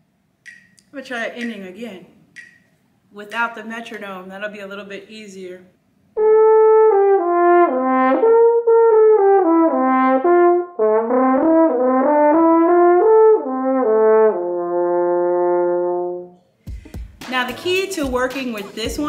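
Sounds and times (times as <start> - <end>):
french horn playing slow melody: 6.2 - 16.4
breath: 16.4 - 17.2.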